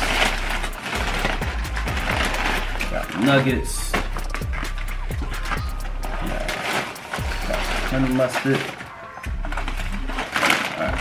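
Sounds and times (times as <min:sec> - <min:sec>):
paper bags rustling: 0:00.0 - 0:11.0.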